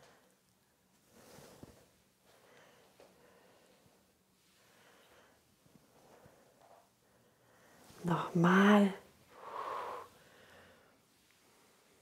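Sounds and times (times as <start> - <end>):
woman breathing out: 9.3 - 11.0.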